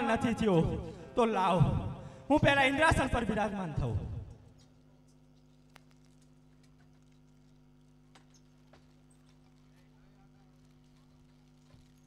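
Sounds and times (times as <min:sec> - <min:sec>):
steady low hum: 0:00.0 - 0:12.0
faint clicks: 0:04.6 - 0:12.0.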